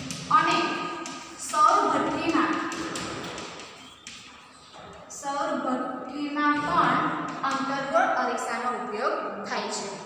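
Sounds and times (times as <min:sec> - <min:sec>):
chalk tapping and scratching on blackboard: 0:00.0 - 0:05.1.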